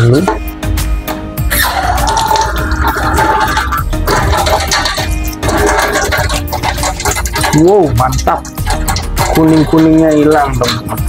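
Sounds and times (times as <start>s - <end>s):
background music with a beat: 0.0s - 11.0s
tap water splashing into a sink: 1.6s - 11.0s.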